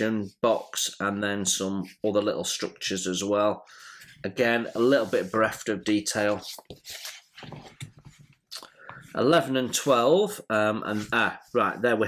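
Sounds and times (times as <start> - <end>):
paper pages rustling: 4.7 - 8.4.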